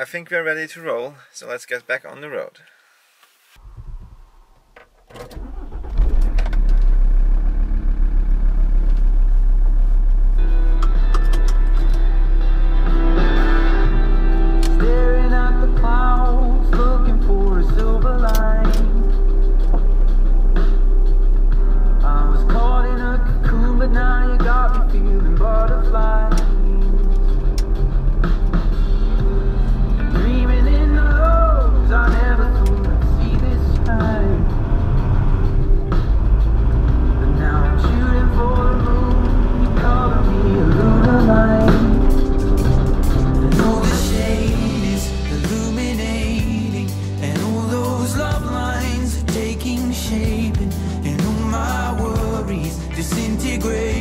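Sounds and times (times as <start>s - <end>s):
van engine starting and running: 3.6s - 54.0s
song with singing voice: 12.2s - 19.9s, 21.7s - 54.0s.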